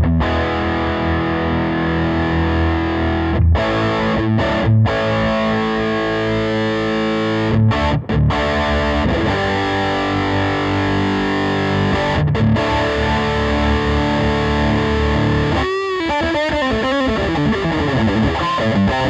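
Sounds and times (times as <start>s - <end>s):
distorted electric guitar chords: 0.0s - 19.0s.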